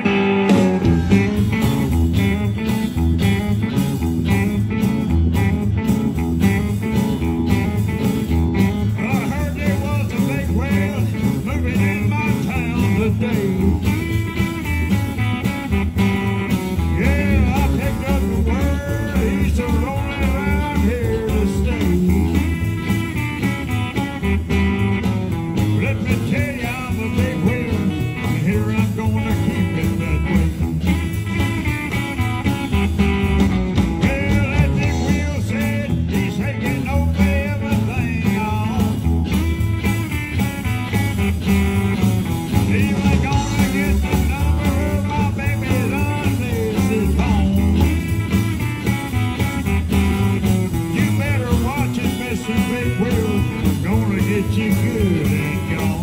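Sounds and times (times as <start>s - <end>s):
drums with steady beat: 0.0s - 56.0s
electric guitars: 0.0s - 56.0s.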